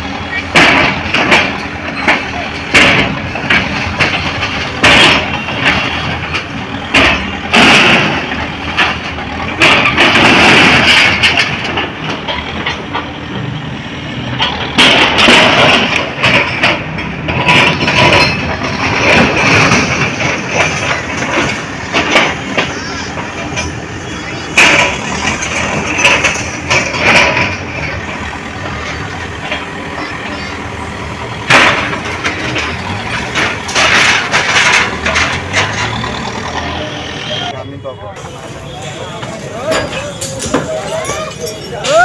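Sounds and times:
diesel engine running: 0.0s - 42.0s
knocks and crashes of falling masonry: 0.3s - 13.0s, 14.8s - 23.6s, 24.4s - 28.2s, 31.4s - 36.3s, 38.8s - 42.0s.

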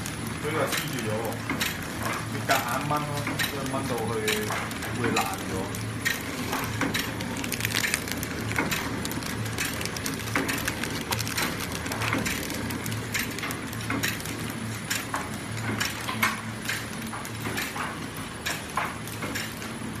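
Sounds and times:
packaging machine hum: 0.0s - 20.0s
rapid mechanical clicking and clattering: 0.0s - 20.0s.

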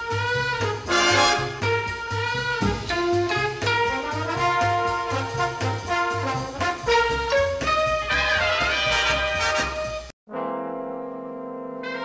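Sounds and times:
walking bass line: 0.0s - 8.1s
jazzy brass music: 0.0s - 12.0s.

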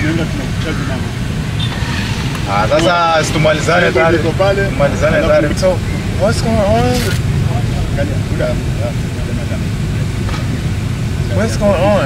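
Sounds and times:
muffled voices talking: 0.0s - 1.3s, 2.3s - 10.5s.

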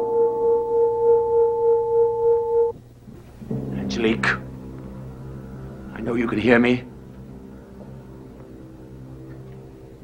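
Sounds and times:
low steady music chord: 0.0s - 10.0s
dramatic music sting: 3.4s - 10.0s.

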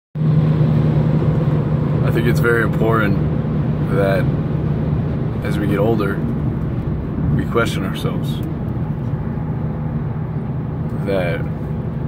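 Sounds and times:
car engine and road hum: 0.2s - 12.0s
rush of tyres and wind: 0.2s - 12.0s.

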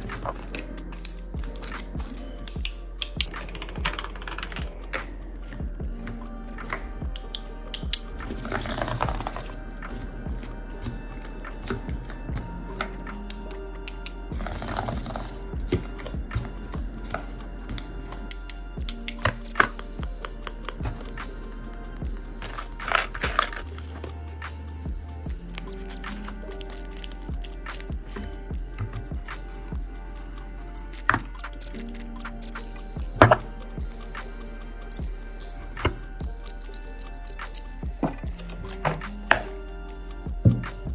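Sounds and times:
background music: 0.0s - 40.9s.

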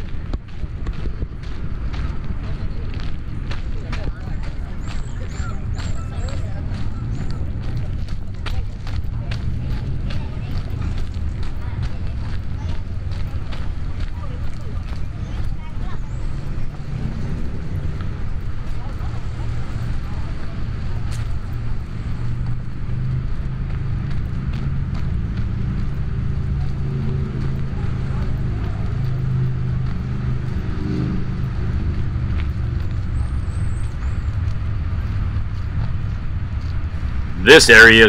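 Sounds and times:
faint voices: 0.0s - 36.4s, 37.2s - 38.0s
distant road traffic rumble: 0.0s - 38.0s.

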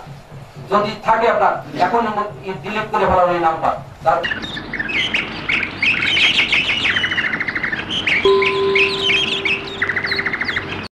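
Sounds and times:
songbirds chirping: 2.7s - 10.9s
bird trill: 4.2s - 10.9s
steady low tone: 8.2s - 10.8s.

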